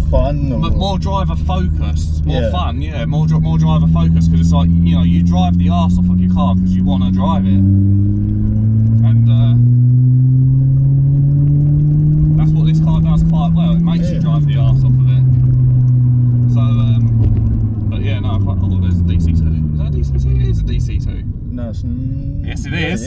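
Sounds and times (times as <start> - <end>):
car engine accelerating: 0.0 - 23.0.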